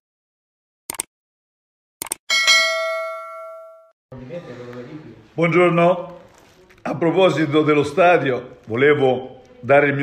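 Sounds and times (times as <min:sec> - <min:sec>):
notification bell ding: 0:02.3 - 0:04.0.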